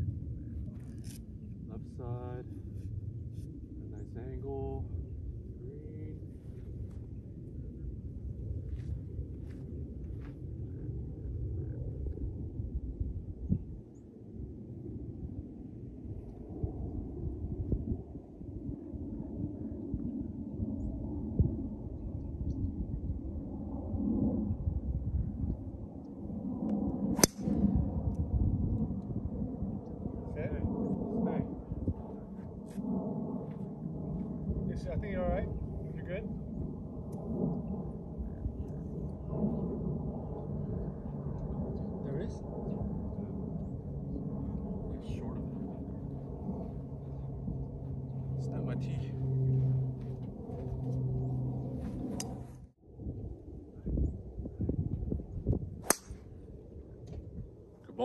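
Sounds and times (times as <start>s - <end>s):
golf club striking ball: 27.2s - 27.7s, 55.8s - 56.3s.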